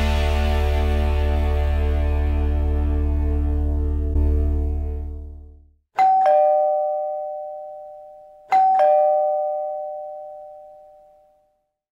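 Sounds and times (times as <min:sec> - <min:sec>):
background music: 0:00.0 - 0:05.7
two-tone doorbell chime: 0:06.0 - 0:11.7.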